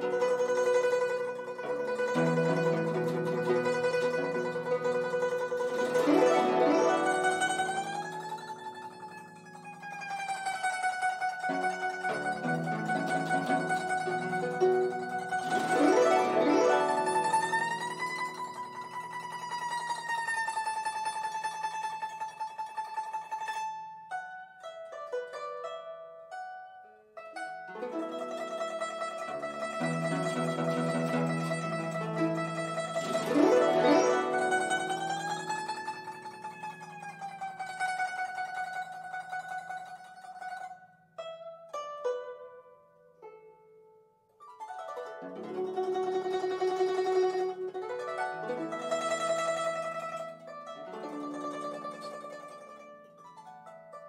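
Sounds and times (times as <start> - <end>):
guzheng glissando: 0.0 - 43.5, 44.4 - 54.0
guzheng melody: 0.0 - 54.0.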